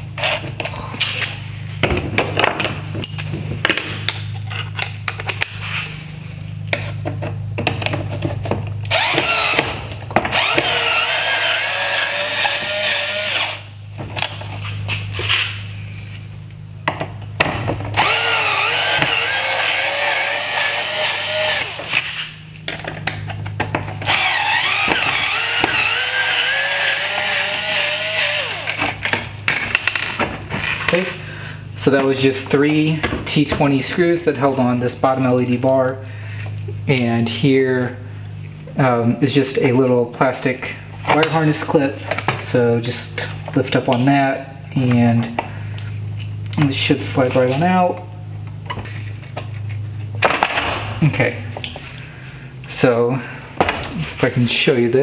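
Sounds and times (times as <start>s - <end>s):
electric screwdriver motor whine: 8.9s - 9.7s, 10.3s - 13.6s, 18.0s - 22.2s, 24.0s - 28.8s.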